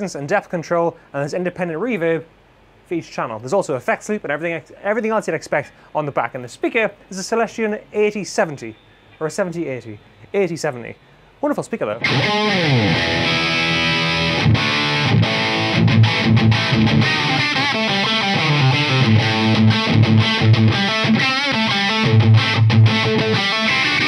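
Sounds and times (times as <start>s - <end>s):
distorted electric guitar riff: 12.0s - 24.0s.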